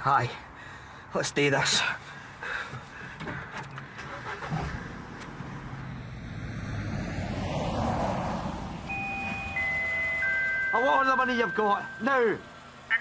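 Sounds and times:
car engine and tyres rumbling: 0.0 - 13.0
light knocks and rustles: 2.7 - 4.1.

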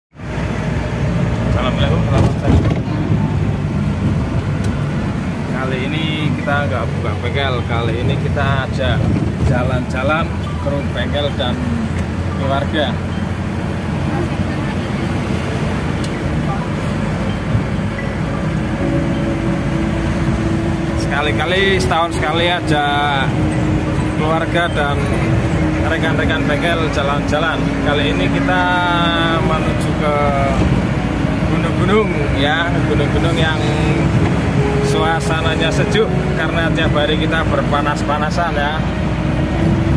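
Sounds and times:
motor vehicle running: 0.1 - 39.9.

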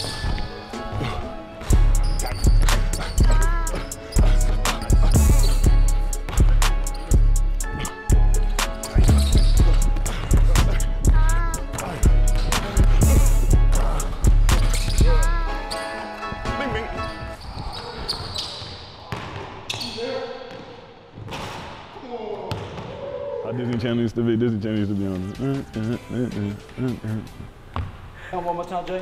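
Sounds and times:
sneakers squeaking on hardwood: 0.0 - 21.7, 27.7 - 28.0
basketball dribbling: 1.6 - 8.2, 9.0 - 13.2
music beat with heavy bass: 1.7 - 15.6.

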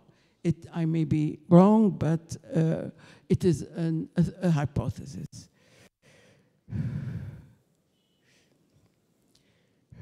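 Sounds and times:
woman breathing into microphone: 5.6 - 7.6.

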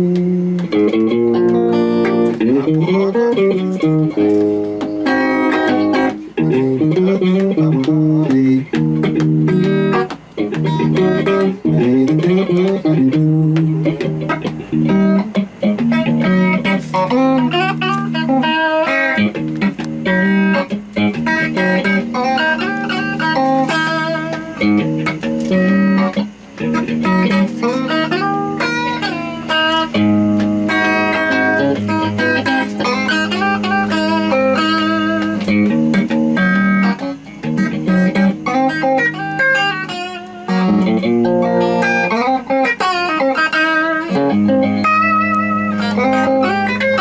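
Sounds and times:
blues guitar solo: 0.0 - 47.0.

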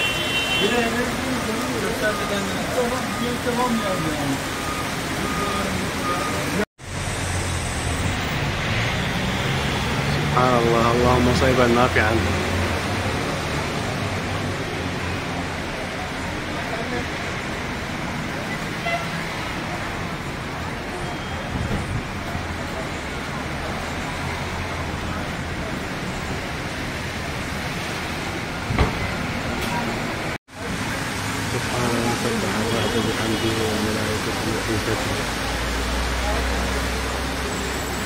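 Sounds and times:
low traffic rumble: 0.0 - 38.0
rain falling on street: 0.0 - 38.0.

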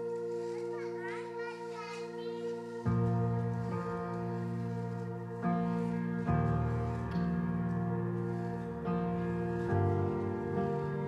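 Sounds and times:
soft keyboard chord: 0.0 - 11.0.

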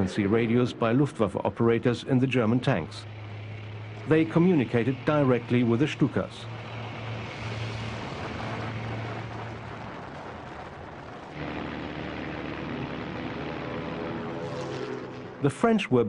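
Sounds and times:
drone with steady pitched tones: 0.0 - 15.6
engine drone and rumble: 0.0 - 16.0.

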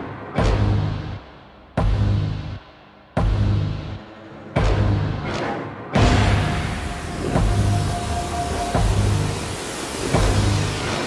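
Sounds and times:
deep heavy bass hits: 1.8 - 2.6, 3.2 - 4.0, 6.0 - 11.0
steady high tone: 6.0 - 11.0.

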